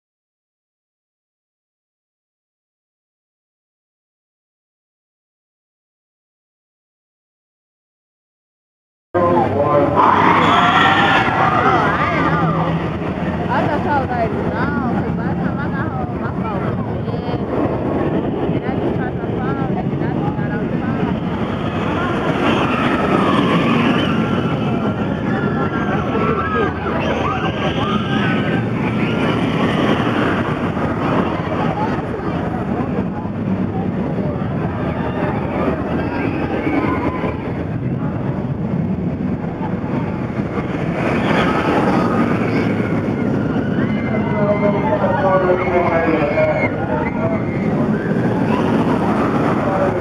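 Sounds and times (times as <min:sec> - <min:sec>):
people's voices: 0:09.2 - 0:50.0
roller coaster rumbling on track: 0:09.2 - 0:50.0.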